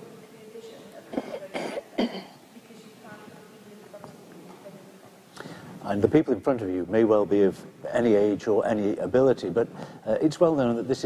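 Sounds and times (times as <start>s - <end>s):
person coughing: 1.1s - 2.4s.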